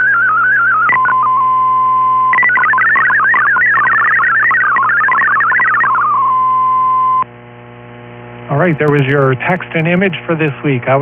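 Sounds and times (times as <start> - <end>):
digital data signal tones: 0.0 - 7.2
receiver hum and hiss: 0.0 - 11.0.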